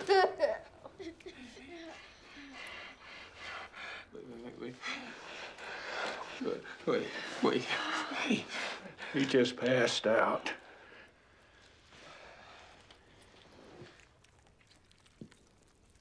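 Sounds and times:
person laughing: 0.0s - 2.0s.

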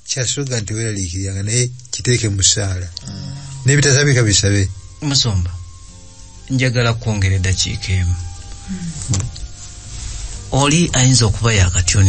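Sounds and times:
man speaking: 0.0s - 5.7s, 6.5s - 8.3s, 10.5s - 12.0s
faint steady background tones: 0.0s - 12.0s.

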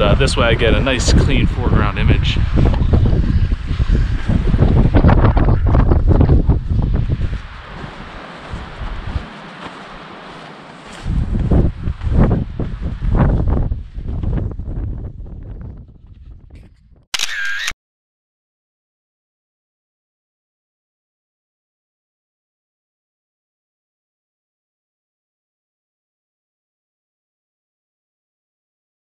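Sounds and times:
wind buffeting microphone: 0.0s - 17.1s
camera shutter click: 17.2s - 17.8s.

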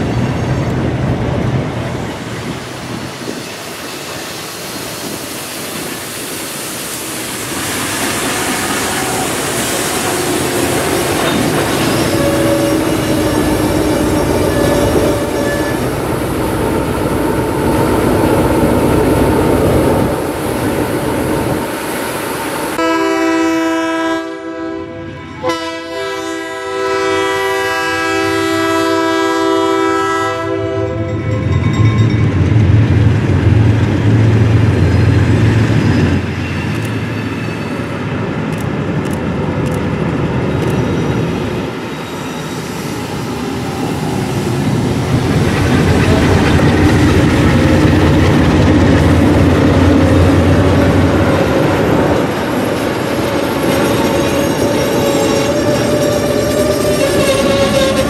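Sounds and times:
freight train clattering past: 0.0s - 58.0s
locomotive horn blasts: 8.8s - 16.0s, 22.8s - 31.4s, 55.1s - 58.0s
faint wheel squeal: 11.2s - 15.9s.

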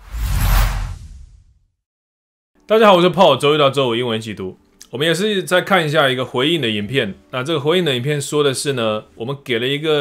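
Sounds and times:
whoosh with deep rumble: 0.0s - 1.6s.

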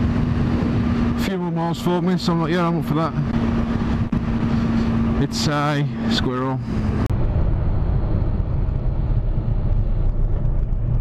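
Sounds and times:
motorcycle engine cruising: 0.0s - 11.0s
road and wind rush: 0.0s - 11.0s.

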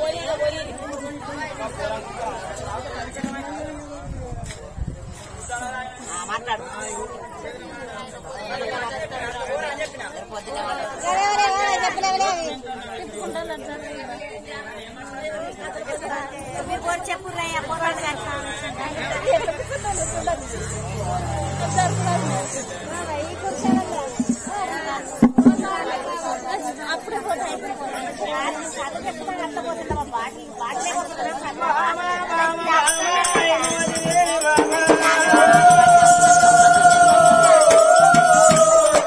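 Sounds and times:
background chatter: 0.0s - 39.0s
people talking over one another: 0.0s - 39.0s.

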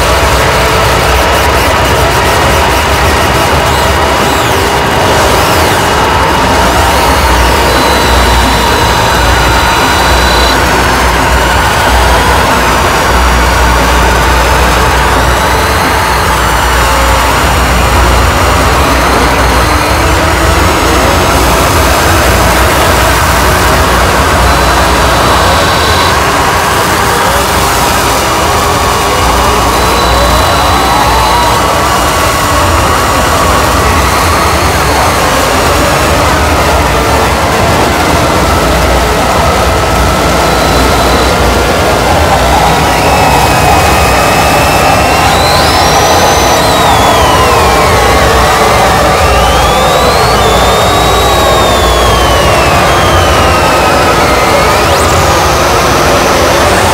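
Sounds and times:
distorted noise wall: 0.0s - 56.9s.

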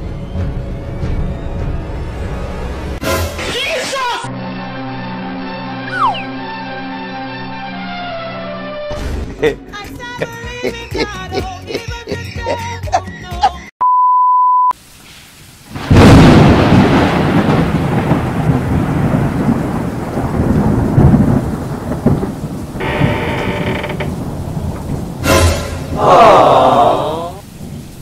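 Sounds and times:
short steady beep: 13.8s - 14.7s
steady rain: 14.8s - 28.0s
rumbling thunder: 15.7s - 26.6s, 27.5s - 28.0s
thunderclap: 15.7s - 28.0s.

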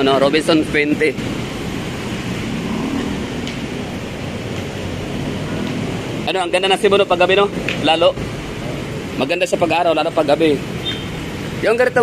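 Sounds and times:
passing cars and motorcycles: 0.0s - 12.0s.

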